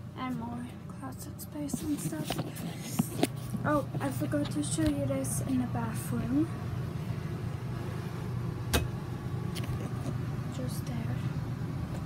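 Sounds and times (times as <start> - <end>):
air conditioner hum: 0.0 - 12.0.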